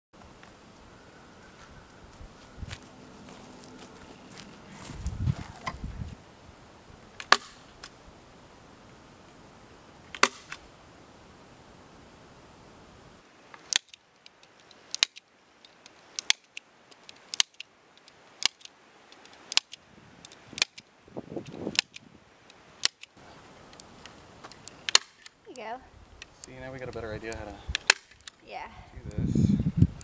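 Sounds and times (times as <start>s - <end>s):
staple gun snapping into wood: 15.0s - 15.2s, 17.3s - 17.6s, 21.7s - 22.0s.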